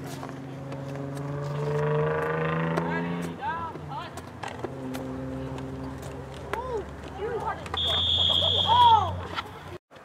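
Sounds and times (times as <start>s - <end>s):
vehicle engine passing: 0.0s - 9.8s
players shouting: 5.3s - 9.8s.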